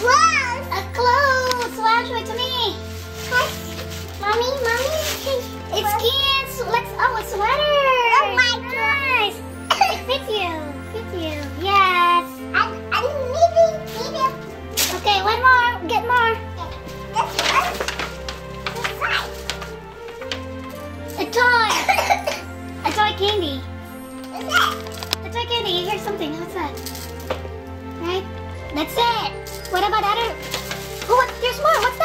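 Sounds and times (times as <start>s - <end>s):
child's excited voice: 0.0s - 3.6s, 4.2s - 9.4s, 10.0s - 14.4s, 15.0s - 18.0s, 18.7s - 19.4s, 21.2s - 22.2s, 24.4s - 26.7s
background music: 0.0s - 32.0s
short cough: 9.7s - 10.0s
child vocalizing: 24.3s - 24.8s.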